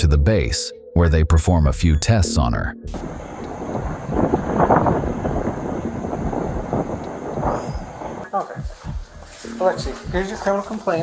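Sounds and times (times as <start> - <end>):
wind buffeting microphone: 2.9 - 9.1.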